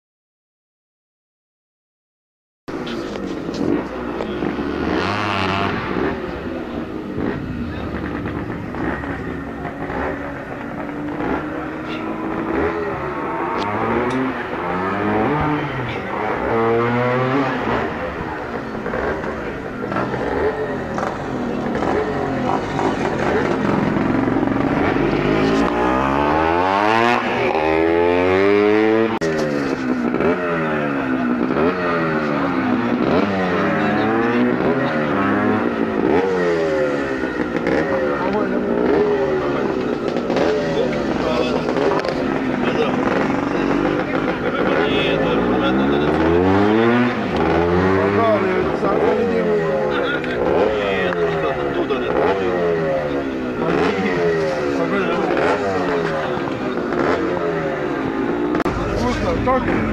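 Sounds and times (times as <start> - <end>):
motorcycle engines revving: 2.7 - 59.9.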